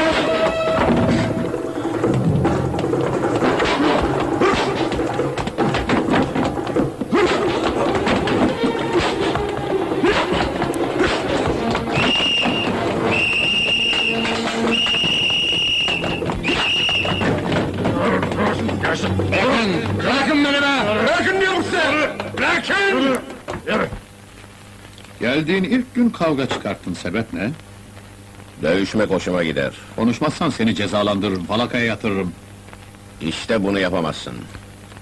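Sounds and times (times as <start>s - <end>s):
dramatic music: 0.0s - 6.7s
punches and scuffling: 2.1s - 20.2s
shrill whistle blasts: 11.9s - 17.4s.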